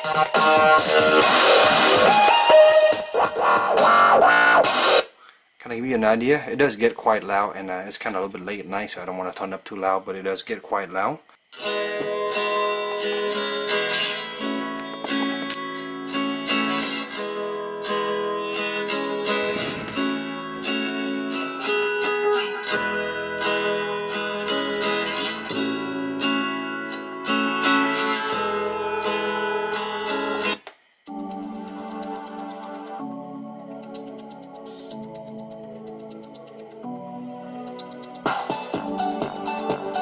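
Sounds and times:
song from smart speaker: 0.0 - 5.1, 11.6 - 40.0.

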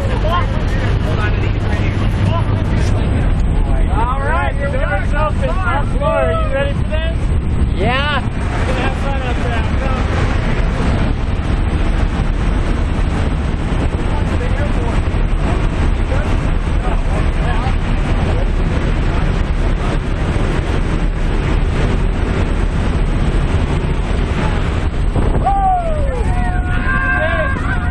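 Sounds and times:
plane engine and propeller: 0.0 - 27.9
wind rushing through open door: 0.0 - 27.9
voices shouting: 25.4 - 27.9.

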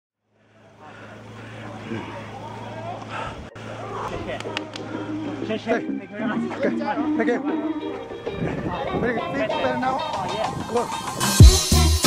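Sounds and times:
background noise: 0.2 - 11.2.

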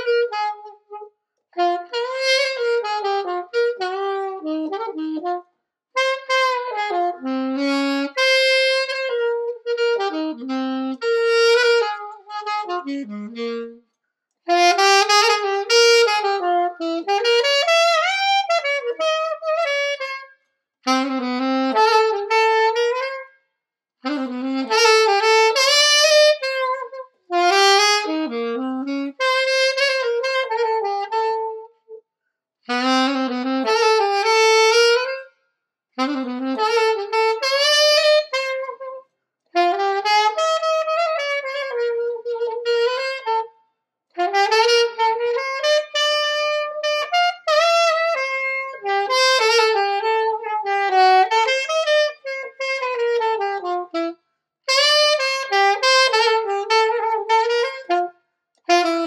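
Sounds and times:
saxophone melody: 0.0 - 23.4, 24.0 - 32.0, 32.6 - 35.4, 36.0 - 59.0.

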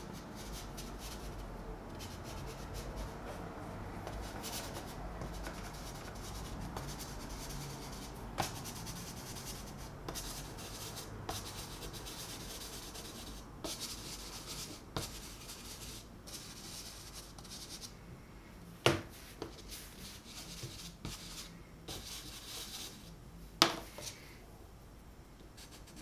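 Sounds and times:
pastel stick scratching paper: 0.1 - 3.5, 4.1 - 17.9, 19.4 - 23.1, 25.6 - 26.0.

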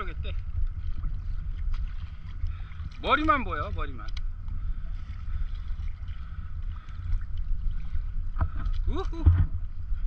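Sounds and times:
faint water: 0.0 - 10.0
wind buffeting microphone: 0.0 - 10.0.

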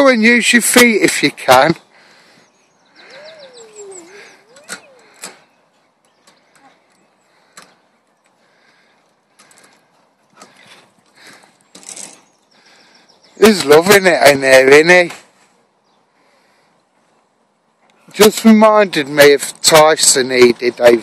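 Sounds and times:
swing squeak: 3.0 - 5.6
swing chains creaking: 3.0 - 8.4, 9.1 - 12.4.

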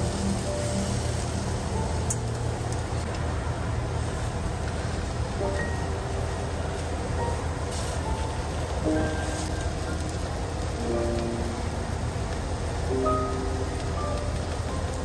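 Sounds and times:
slices sizzling in oil: 0.0 - 15.0
soft background music: 0.0 - 15.0.

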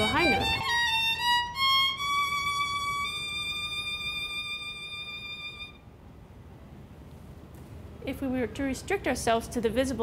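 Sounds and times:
violin holding high bowed note: 0.0 - 5.8.

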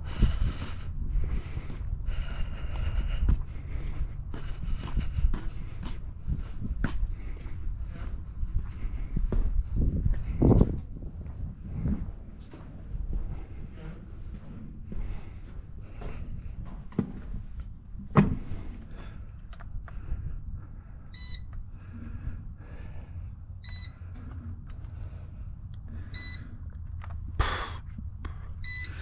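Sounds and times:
short electronic beeps: 21.2 - 21.5, 23.6 - 24.0, 26.1 - 26.6, 28.6 - 29.0.

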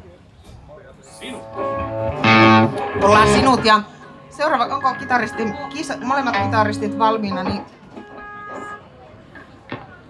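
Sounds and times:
amplified held chord: 1.2 - 8.4.

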